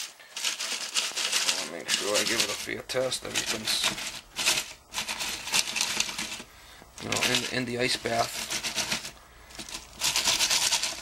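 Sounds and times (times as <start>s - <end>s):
ice clinking and crunching in pot: 0.0s - 11.0s.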